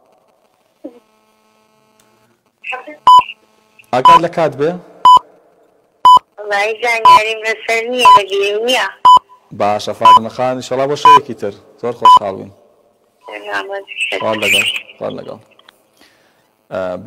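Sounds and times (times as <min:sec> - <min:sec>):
person talking: 0:13.3 - 0:15.6.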